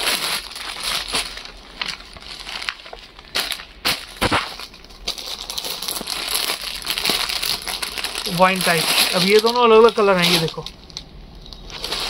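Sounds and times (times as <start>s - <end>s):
plastic packets crinkling: 0.0s - 12.0s.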